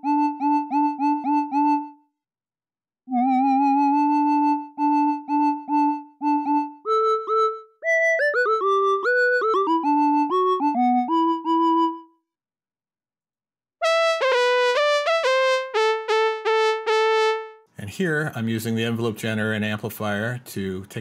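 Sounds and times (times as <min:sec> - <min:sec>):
synthesizer lead melody: 0:00.0 - 0:02.1, 0:03.1 - 0:12.2, 0:13.8 - 0:17.7
brassy synth trumpet lead: 0:13.8 - 0:17.7.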